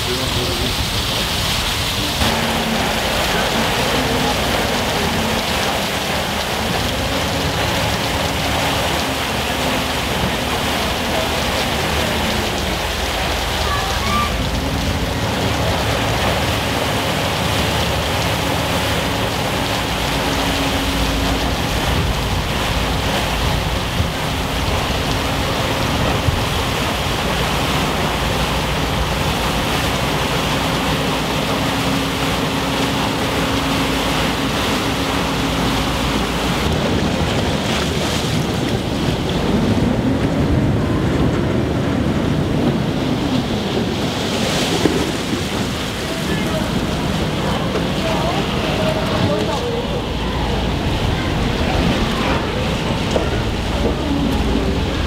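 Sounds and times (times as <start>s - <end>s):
low engine hum: 0.0s - 55.0s
ship pushing through ice: 0.0s - 55.0s.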